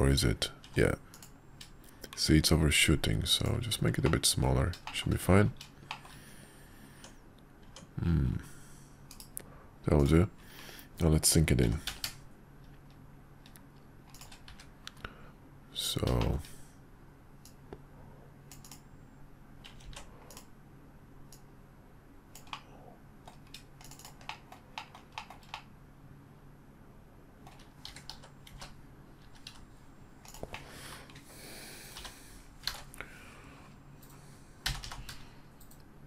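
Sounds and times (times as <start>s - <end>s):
faint low hum: 0.0s - 36.0s
keyboard key presses: 22.4s - 25.7s.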